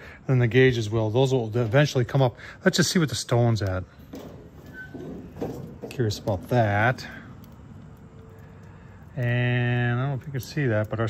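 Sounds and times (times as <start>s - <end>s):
steady background hiss: 0.0s - 11.0s
grill lid opening: 4.1s - 7.1s.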